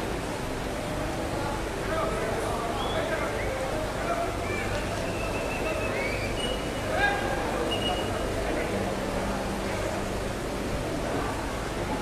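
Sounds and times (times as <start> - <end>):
noisy background ambience: 0.0 - 12.0.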